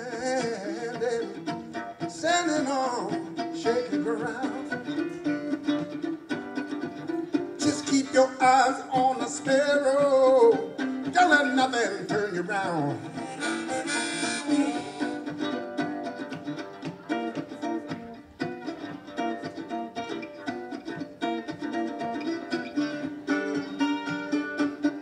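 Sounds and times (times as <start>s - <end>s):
blues harmonica: 0.0s - 25.0s
strummed mandolin: 0.0s - 25.0s.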